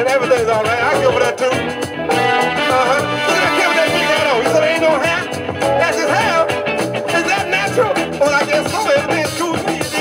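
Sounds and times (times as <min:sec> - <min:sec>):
drum and bass groove: 0:00.0 - 0:10.0
guitar: 0:00.0 - 0:10.0
jazz-funk record: 0:00.0 - 0:10.0
piano: 0:00.9 - 0:10.0
horn section: 0:02.0 - 0:08.9.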